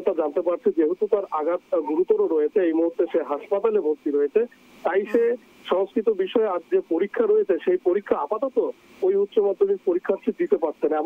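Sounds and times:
man talking over phone line: 0:00.0 - 0:11.0.

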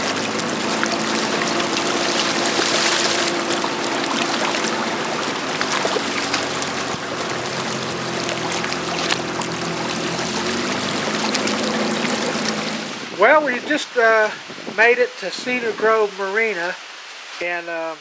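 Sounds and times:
outboard motor running: 0:00.0 - 0:13.2
water rushing: 0:00.0 - 0:18.0
wind: 0:00.0 - 0:18.0.

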